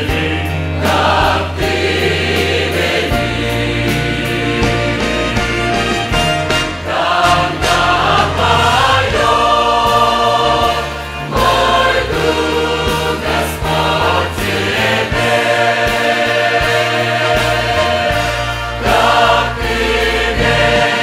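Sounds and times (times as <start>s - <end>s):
mixed choir singing a hymn: 0.0s - 6.1s, 6.8s - 21.0s.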